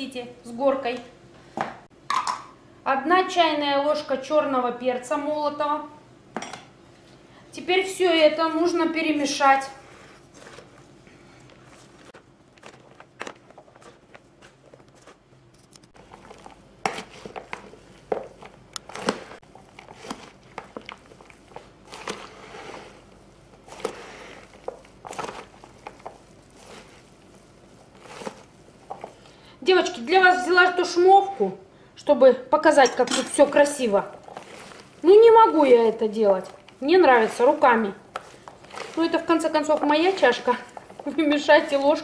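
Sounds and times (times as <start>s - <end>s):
salad rustling and squelching: 9.8s - 30.0s, 33.4s - 42.0s.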